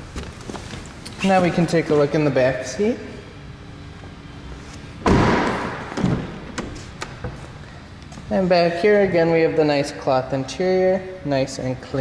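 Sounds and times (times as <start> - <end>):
car door shutting thud: 5.0 - 7.4.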